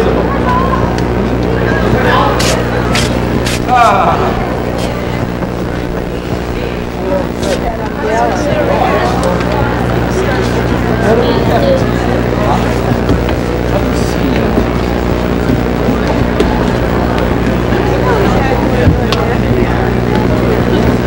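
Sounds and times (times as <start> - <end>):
low electrical hum: 0.0 - 21.0
murmur of large audience: 0.0 - 21.0
tape hiss: 0.0 - 21.0.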